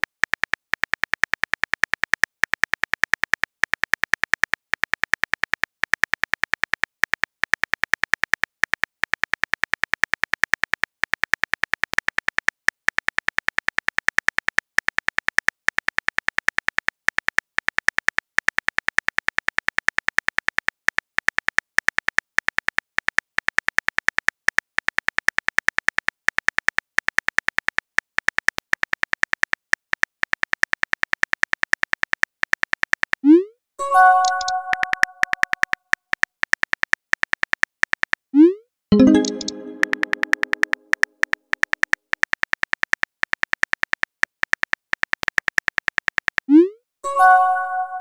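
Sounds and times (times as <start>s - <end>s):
message chime: 33.8s - 35.3s, 38.9s - 40.5s, 47.1s - 48.0s
phone keyboard typing clicks: 34.0s - 38.2s, 38.9s - 46.4s
keyboard tap clicks: 34.2s - 35.7s, 39.0s - 40.8s.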